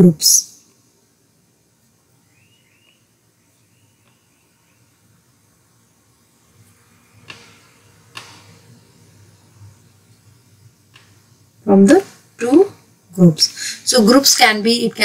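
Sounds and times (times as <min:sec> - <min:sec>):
faint high chirps: 0:02.1 - 0:05.1.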